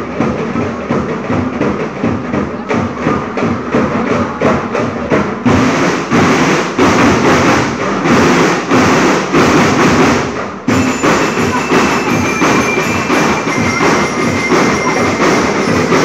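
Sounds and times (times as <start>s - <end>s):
drums beating fast rhythm: 0.0s - 16.0s
marching band playing: 0.0s - 16.0s
high ringing notes: 10.7s - 16.0s.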